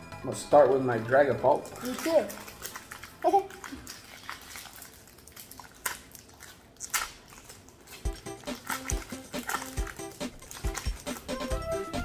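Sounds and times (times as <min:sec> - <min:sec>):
music with steady beat: 0:00.0 - 0:01.0, 0:08.0 - 0:12.0
foil packs crinkling and tearing: 0:01.7 - 0:12.0.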